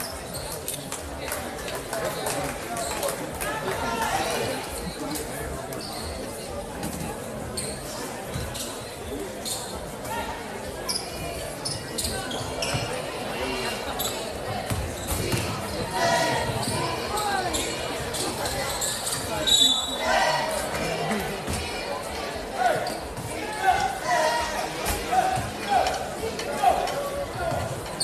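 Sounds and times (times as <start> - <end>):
echoing voices in a gym: 0.0 - 28.0.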